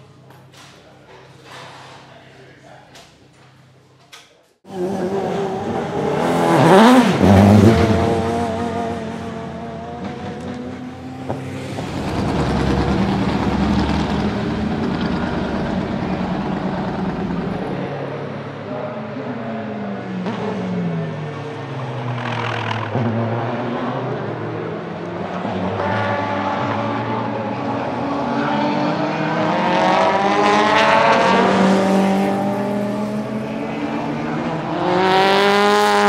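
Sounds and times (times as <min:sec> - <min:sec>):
race car engine revving: 0:04.7 - 0:18.4, 0:19.2 - 0:36.0.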